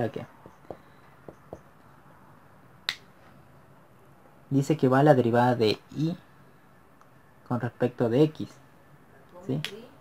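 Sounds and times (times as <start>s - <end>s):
faint marker taps: 0.4s - 1.7s.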